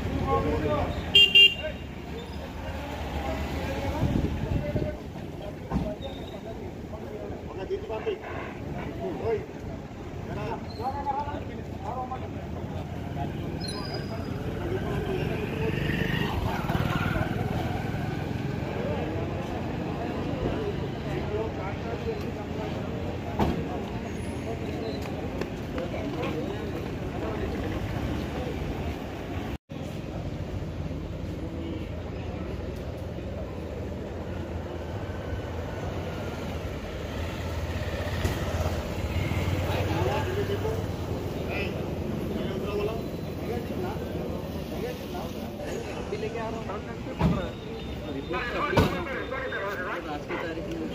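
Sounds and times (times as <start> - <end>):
vehicle engines rumbling: 0.0 - 50.9
people talking: 18.5 - 28.9, 39.1 - 50.9.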